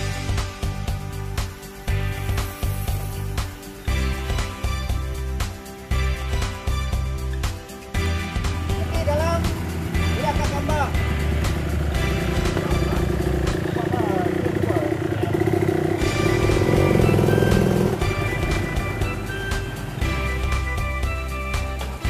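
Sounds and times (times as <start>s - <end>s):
background music: 0.0s - 22.0s
dirt bike engine running: 0.0s - 22.0s
voices: 8.7s - 20.3s.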